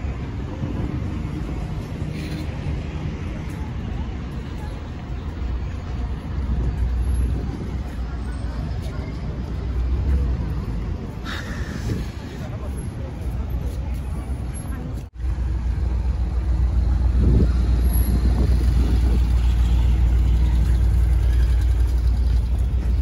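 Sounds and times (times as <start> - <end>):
road traffic rumble: 0.0 - 23.0
voices of passers-by: 0.0 - 23.0.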